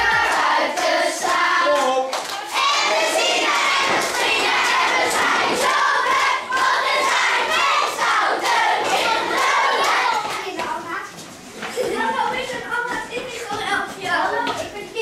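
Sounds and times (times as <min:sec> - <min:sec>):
hand claps: 0:00.0 - 0:02.5
children singing and shouting: 0:00.0 - 0:15.0.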